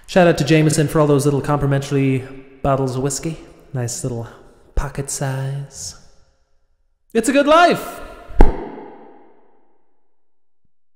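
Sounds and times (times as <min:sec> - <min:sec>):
deep percussive hit: 0:08.3 - 0:09.4.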